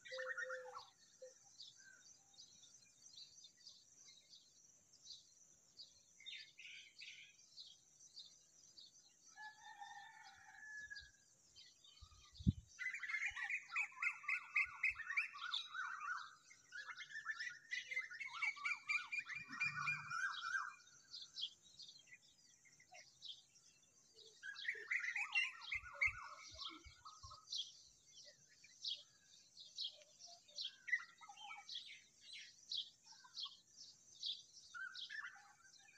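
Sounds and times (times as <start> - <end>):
small birds chirping: 11.6 - 35.9.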